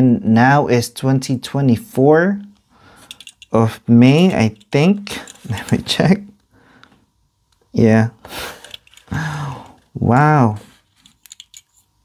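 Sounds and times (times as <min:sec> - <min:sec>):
man's breathy exhale: 0:08.3 - 0:09.8
man murmuring mm: 0:09.1 - 0:09.8.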